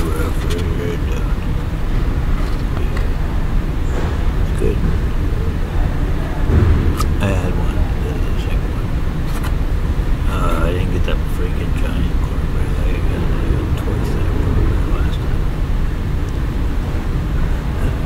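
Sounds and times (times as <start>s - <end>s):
steady low rumble: 0.0s - 18.0s.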